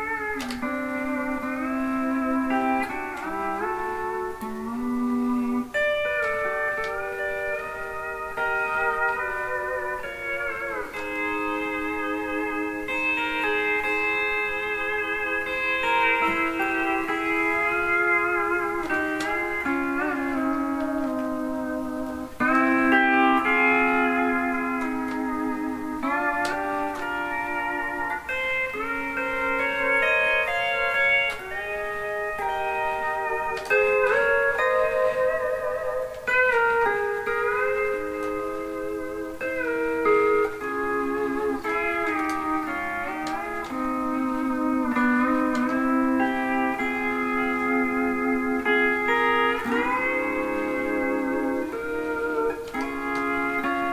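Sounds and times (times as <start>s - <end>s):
pedal steel guitar sliding notes: 0.0s - 53.9s.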